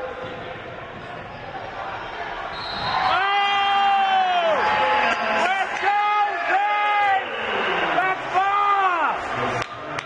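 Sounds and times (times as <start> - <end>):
gym crowd noise: 0.0 - 10.0
spectator shouting: 3.1 - 9.2.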